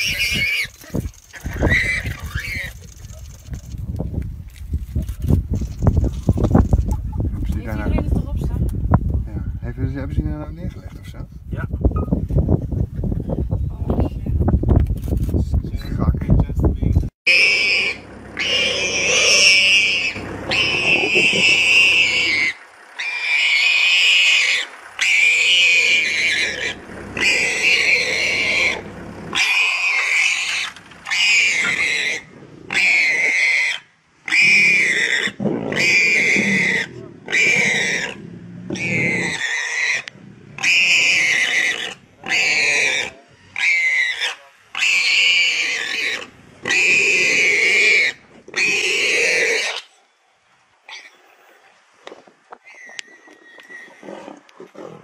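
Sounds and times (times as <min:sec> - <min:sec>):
warthog squealing: 0:00.0 - 0:03.6, 0:17.3 - 0:49.9, 0:52.6 - 0:55.0.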